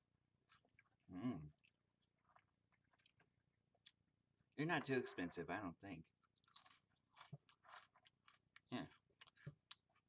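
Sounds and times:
person chewing crackers: 0:00.4 - 0:04.0, 0:06.0 - 0:10.0.

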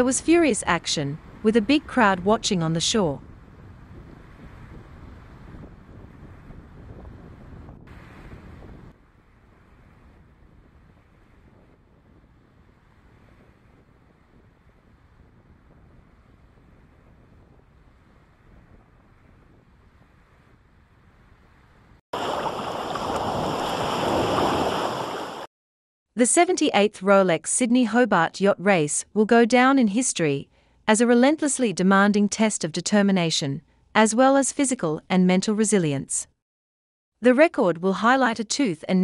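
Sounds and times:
wind buffeting microphone: 0:00.8 - 0:25.5
water noise: 0:22.2 - 0:25.5.

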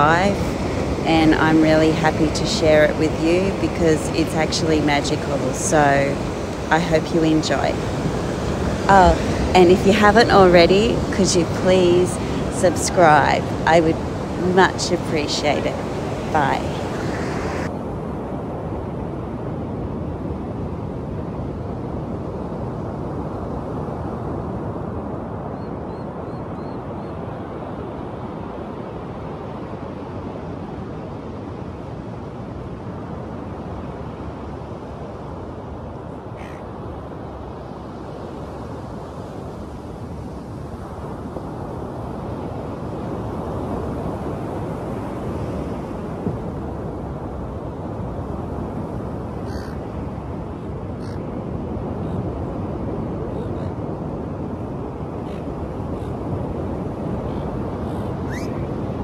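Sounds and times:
ocean surf on beach: 0:00.0 - 0:59.0
faint bird calls: 0:36.3 - 0:36.7, 0:49.4 - 0:49.9, 0:50.6 - 0:51.4, 0:57.2 - 0:58.8.

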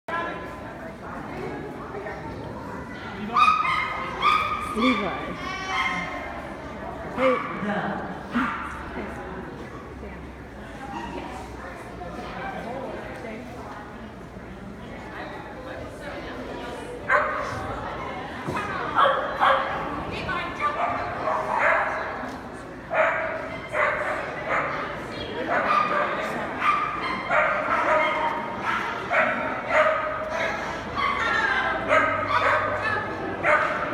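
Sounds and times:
murmur of voices in a hall: 0:00.1 - 0:33.9
dog barking: 0:23.0 - 0:24.8, 0:25.5 - 0:30.2, 0:31.9 - 0:33.8.

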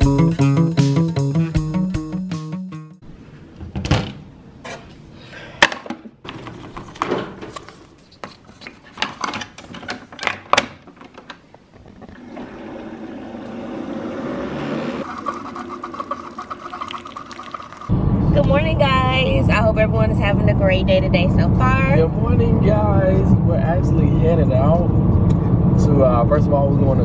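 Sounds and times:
coffee maker pump humming: 0:12.1 - 0:13.6, 0:15.0 - 0:17.9
coffee streaming into mug: 0:15.0 - 0:17.9
voices: 0:18.4 - 0:24.9.

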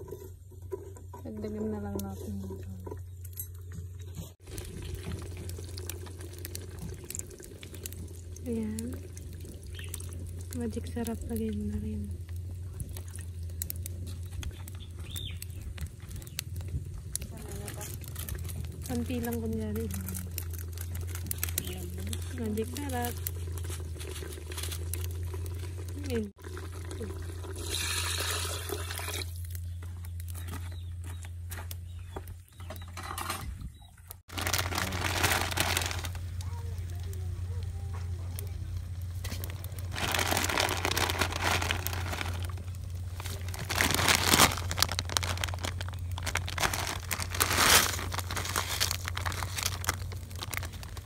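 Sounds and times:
small clicks and splashes: 0:01.9 - 0:30.8
water pouring into a pot: 0:04.4 - 0:14.0, 0:20.2 - 0:29.6, 0:34.3 - 0:36.4
steady low hum: 0:34.6 - 0:51.0.

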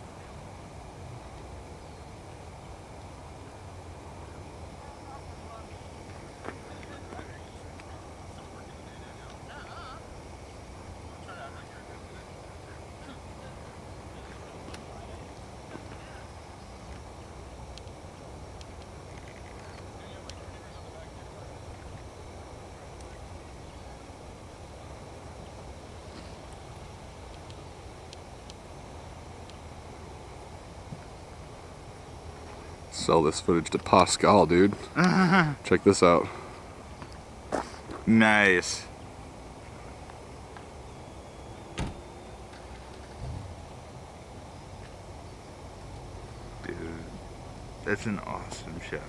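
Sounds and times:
faint hiss: 0:00.0 - 0:49.0
outdoor background noise: 0:00.0 - 0:49.0.

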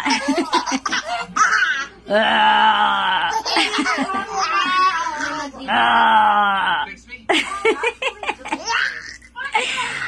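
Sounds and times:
baby laughing: 0:00.0 - 0:02.0, 0:03.3 - 0:05.7.

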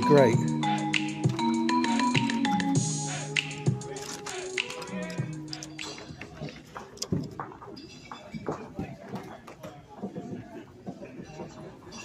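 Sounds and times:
people talking in a hall: 0:02.7 - 0:12.0.

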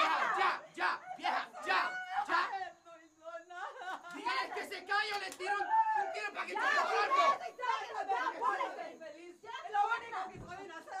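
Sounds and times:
voices shouting and crying out: 0:00.0 - 0:11.0.

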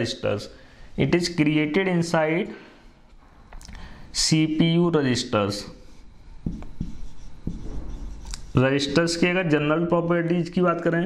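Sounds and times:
marker writing on whiteboard: 0:05.8 - 0:09.3.

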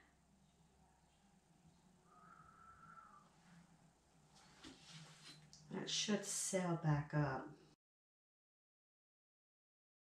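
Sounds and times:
low steady hum: 0:00.0 - 0:07.8.

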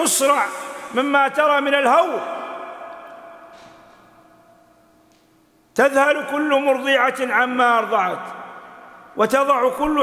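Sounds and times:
man speaking over pa with echo: 0:00.0 - 0:03.8, 0:05.7 - 0:10.0.

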